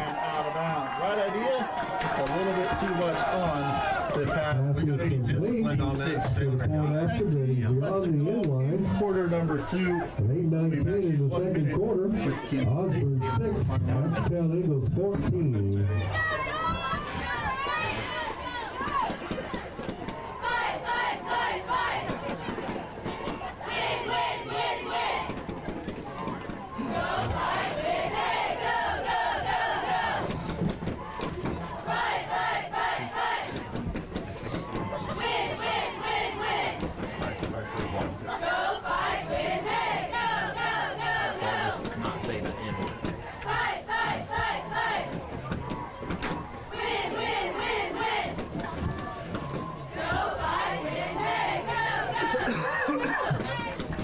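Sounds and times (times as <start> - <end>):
crowd noise: 0.0 - 54.0
cheerleaders shouting a chant: 15.9 - 25.5, 26.1 - 30.3, 31.0 - 33.7, 34.6 - 54.0.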